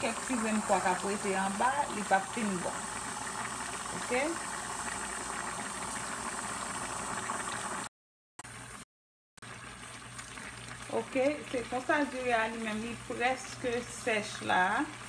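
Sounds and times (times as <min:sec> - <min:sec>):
beans boiling in a pot: 0:00.0 - 0:07.9, 0:09.4 - 0:15.0.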